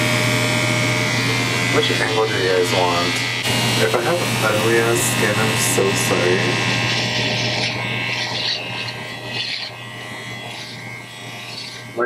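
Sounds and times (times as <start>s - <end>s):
beard trimmer humming: 0.0s - 12.0s
blades rasping through hair: 0.0s - 12.0s.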